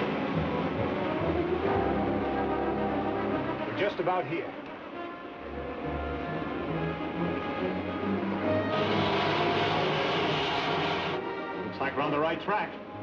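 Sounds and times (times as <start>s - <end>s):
dramatic orchestral score: 0.0s - 13.0s
loud steady hiss: 8.7s - 11.2s.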